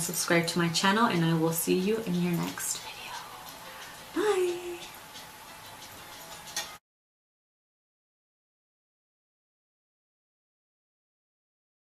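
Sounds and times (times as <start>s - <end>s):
low room hiss: 0.0s - 6.8s.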